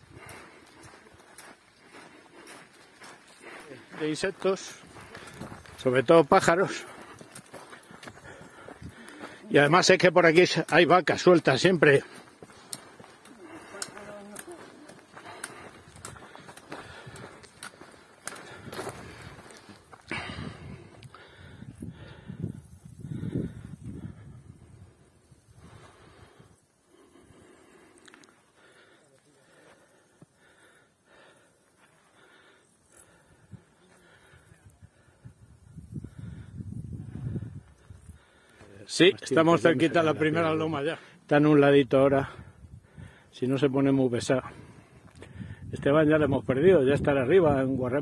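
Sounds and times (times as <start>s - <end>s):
footsteps on dirt trail: 0.0s - 48.0s
indistinct voices murmuring: 0.3s - 22.0s
trekking poles clicking: 12.2s - 20.3s.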